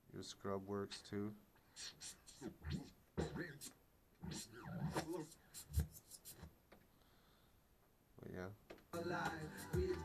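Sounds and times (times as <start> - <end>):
scrubbed audio sliding in pitch: 1.8 - 6.4.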